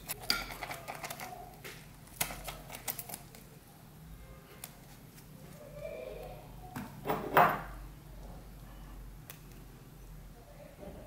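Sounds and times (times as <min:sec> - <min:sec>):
plastic tubes clicking and crackling: 0:00.0 - 0:03.5.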